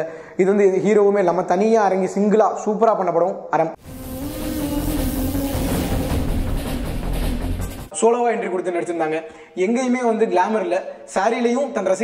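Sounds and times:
deep rumble: 0:03.8 - 0:07.9
low drone tone: 0:03.8 - 0:07.9.

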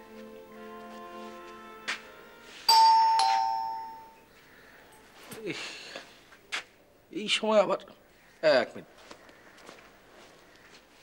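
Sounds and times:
two-tone doorbell chime: 0:02.7 - 0:04.2.

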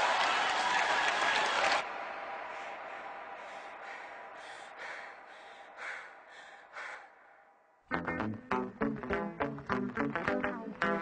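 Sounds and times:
audience applause: 0:00.0 - 0:06.2
breathy gasps or panting: 0:03.4 - 0:07.5.

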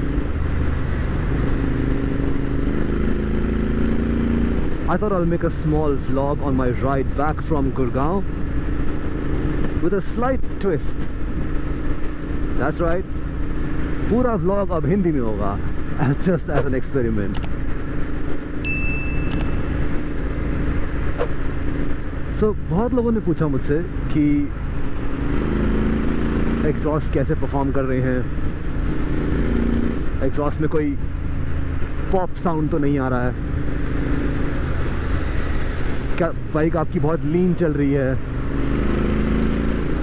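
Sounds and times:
motorcycle engine cruising: 0:00.0 - 0:40.0
road and wind noise: 0:00.0 - 0:40.0.

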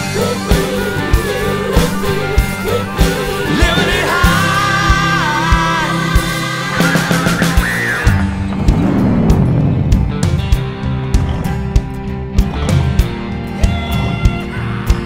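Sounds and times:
blues-rock song: 0:00.0 - 0:15.0.

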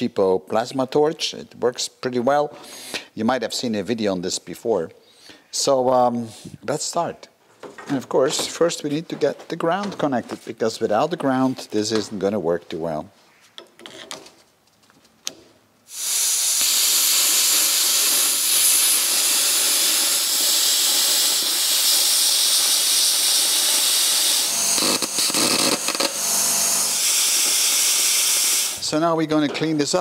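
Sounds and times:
plasma cutter hissing: 0:15.9 - 0:28.9.

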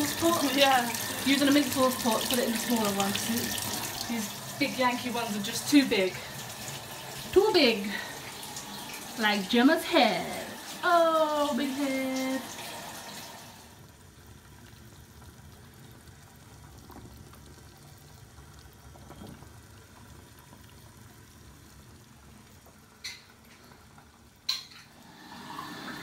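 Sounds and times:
water bubbling in a saucepan: 0:00.0 - 0:26.0.

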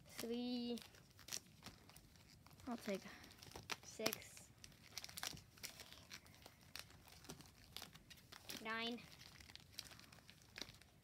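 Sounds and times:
foil wrappers crinkling: 0:00.0 - 0:11.0.

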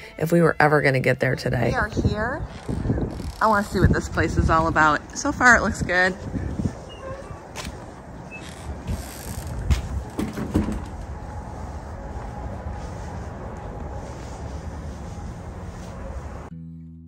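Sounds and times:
low uneven rumble: 0:01.5 - 0:16.5.

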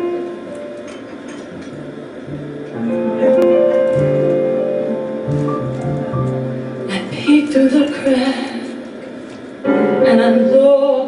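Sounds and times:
keyboard chords: 0:00.0 - 0:07.7, 0:09.6 - 0:11.0
upright bass notes: 0:01.5 - 0:06.9.

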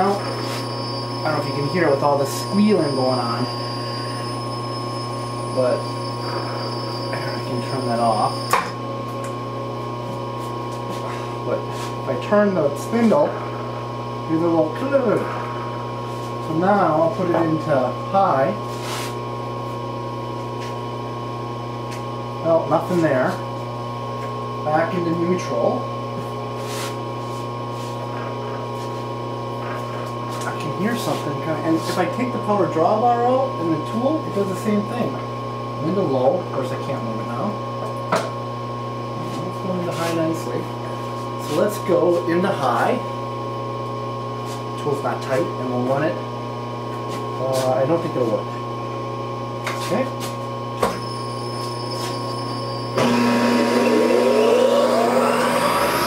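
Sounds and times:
milling machine hum and whine: 0:00.0 - 0:56.0.

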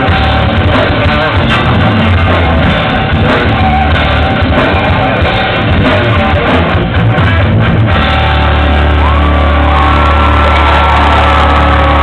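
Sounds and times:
high guitar tone: 0:00.0 - 0:12.0
rock band distorted chord: 0:00.0 - 0:12.0.

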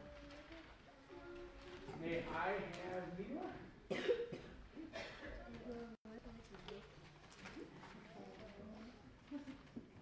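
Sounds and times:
person coughing: 0:03.9 - 0:05.3.

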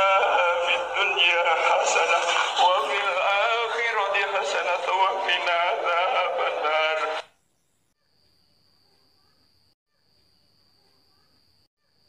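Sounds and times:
chanted prayer: 0:00.0 - 0:07.2
faint high-pitched tone: 0:07.8 - 0:12.0.

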